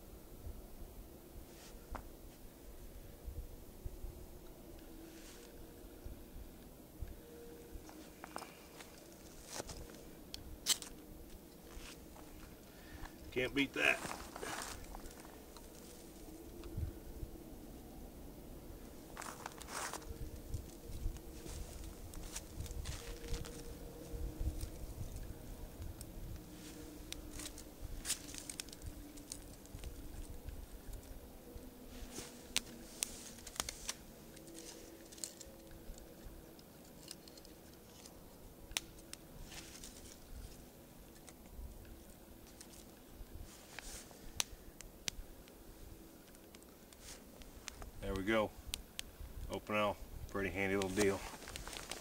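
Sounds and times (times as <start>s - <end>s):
rustling and crinkling of kindling: 7.1s - 16.8s, 18.8s - 52.0s.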